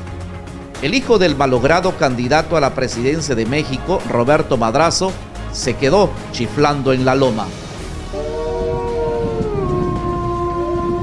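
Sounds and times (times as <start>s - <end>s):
wolf howling: 8.1s - 11.0s.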